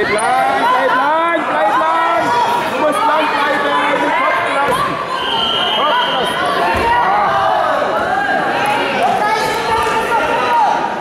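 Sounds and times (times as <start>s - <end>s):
voices shouting and talking: 0.0s - 11.0s.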